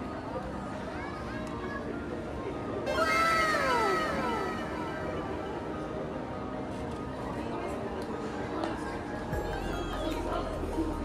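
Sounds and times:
mall background noise: 0.0s - 11.0s
high wailing falling call: 2.9s - 6.0s.

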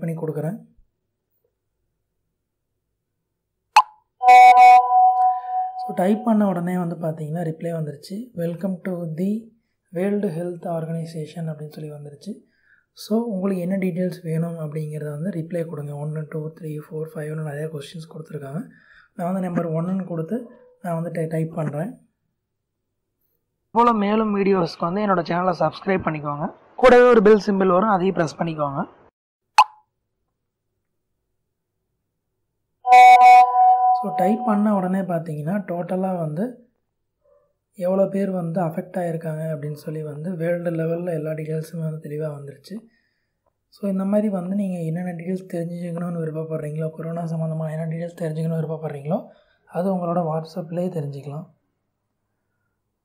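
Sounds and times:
held electronic tone: 4.2s - 6.4s, 32.9s - 34.8s.

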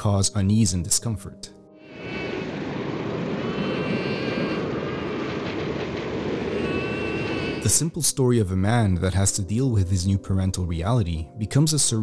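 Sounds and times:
low industrial drone: 1.8s - 7.9s.

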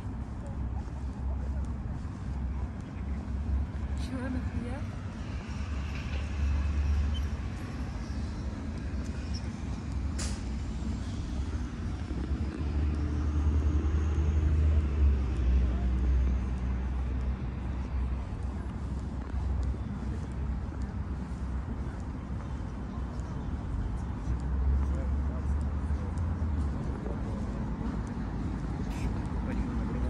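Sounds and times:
people talking: 0.0s - 5.0s, 18.4s - 30.0s
traffic rumble: 0.0s - 30.0s.

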